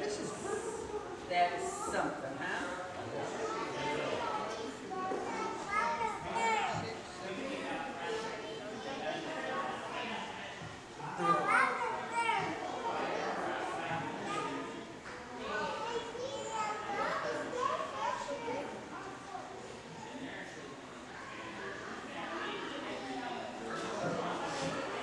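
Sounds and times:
children chattering and calling out: 0:00.0 - 0:25.0.

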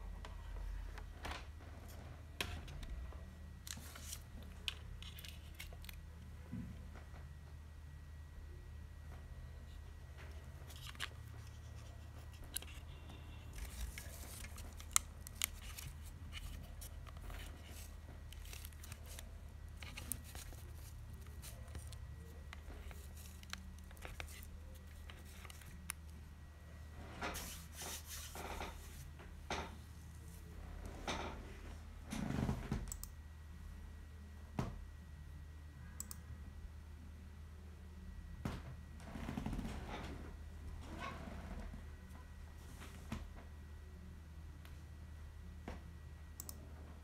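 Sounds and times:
low steady hum: 0:00.0 - 0:47.0.

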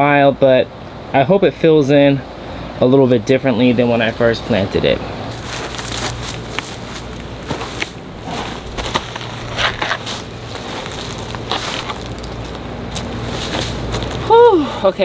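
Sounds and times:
dry leaves crunching and rustling: 0:05.3 - 0:14.5
short crackles: 0:05.4 - 0:14.5.

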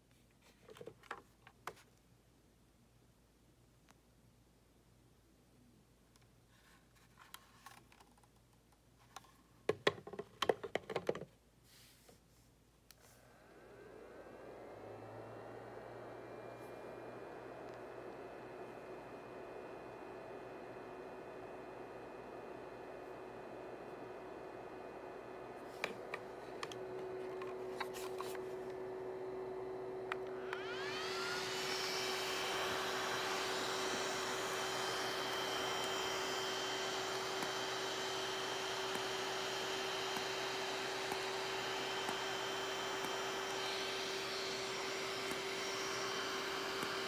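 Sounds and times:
device whirring hum: 0:13.0 - 0:47.0
cooling fan whine: 0:13.2 - 0:47.0.

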